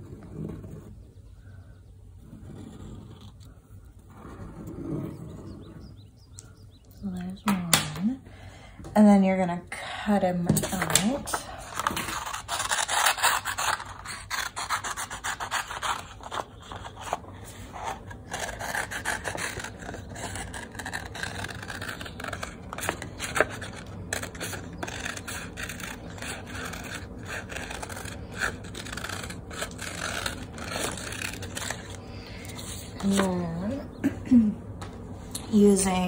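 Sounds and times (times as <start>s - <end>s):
scissors snipping paper: 10.6s - 17.2s, 17.8s - 32.1s
paper rustling: 10.6s - 33.5s.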